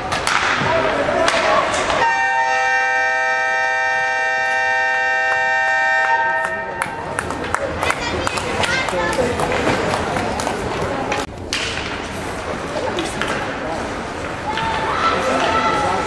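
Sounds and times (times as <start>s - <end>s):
electric horn blast: 2.0s - 6.8s.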